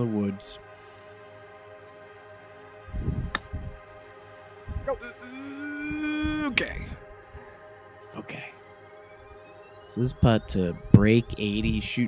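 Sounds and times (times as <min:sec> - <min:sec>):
background music: 0:00.0 - 0:12.0
drawn-out voice: 0:04.9 - 0:07.0.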